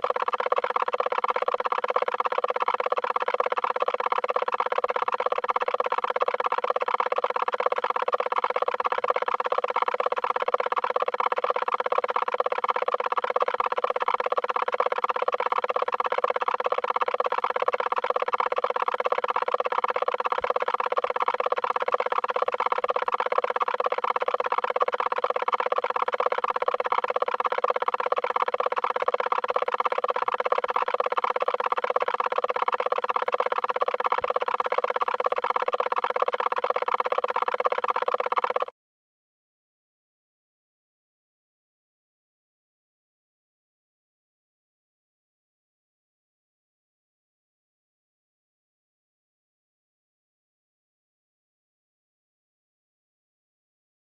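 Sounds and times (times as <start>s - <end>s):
fluttering layered drone: 0.0s - 38.7s.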